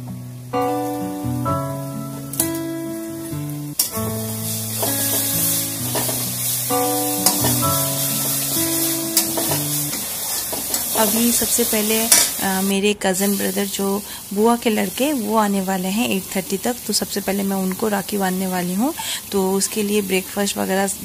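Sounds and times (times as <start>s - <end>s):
plucked background music: 0.0s - 10.1s
food sizzling in hot oil: 0.4s - 21.0s.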